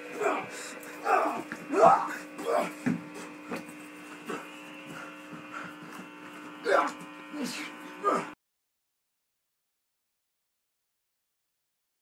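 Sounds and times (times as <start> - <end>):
electrical buzz: 0.0 - 8.4
person shouting and grunting: 0.1 - 3.0, 6.6 - 8.4.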